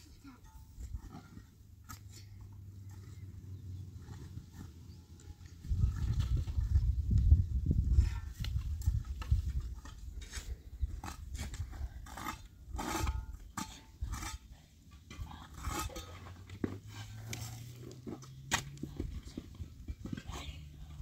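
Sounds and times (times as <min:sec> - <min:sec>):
shovel scraping stony earth: 0:07.9 - 0:21.0.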